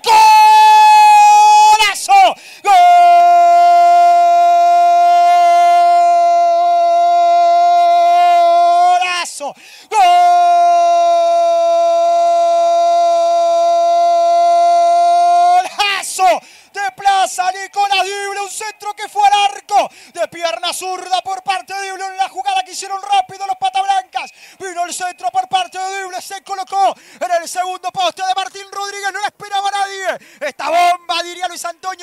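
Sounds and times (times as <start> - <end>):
commentator long goal cry: 0.0 - 16.4.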